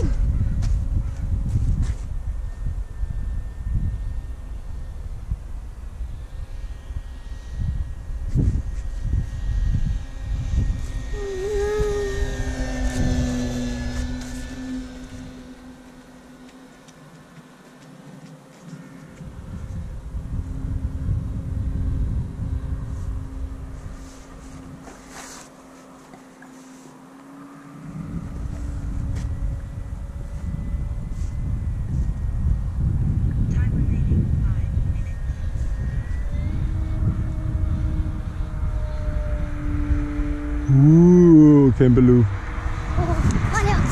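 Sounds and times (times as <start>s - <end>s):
wind rumble on microphone: 0.0s - 25.5s, 27.6s - 43.9s
electric model plane motor humming: 0.0s - 43.9s.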